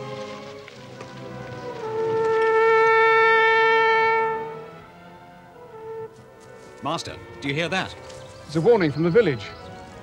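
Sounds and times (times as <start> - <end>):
warning horn long note: 1.8 - 4.8.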